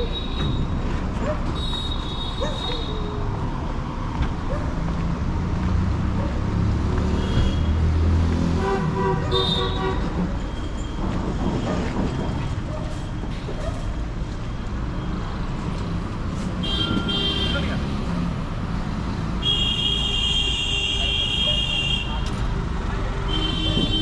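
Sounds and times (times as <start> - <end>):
road traffic rumble: 0.0 - 24.0
long horn blast: 7.2 - 10.1.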